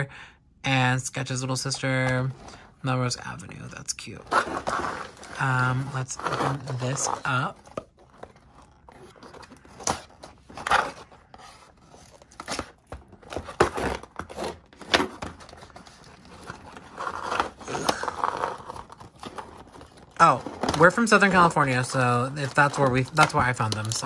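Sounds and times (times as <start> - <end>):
cardboard and tape tearing: 4.2 - 24.0.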